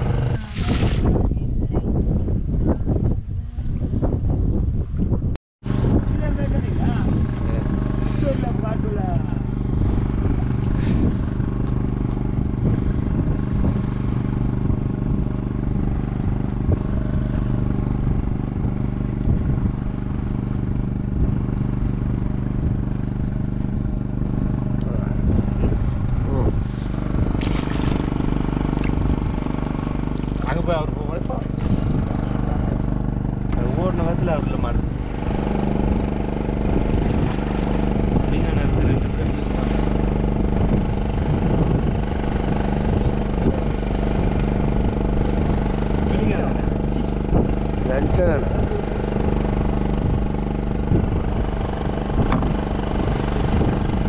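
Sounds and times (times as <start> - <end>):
boat engine running: 0.0 - 54.0.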